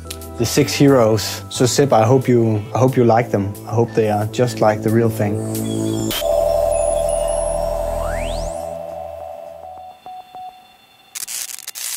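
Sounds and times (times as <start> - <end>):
steady buzzing tone: 5.3 - 10.6
crackle of static: 11.1 - 11.9.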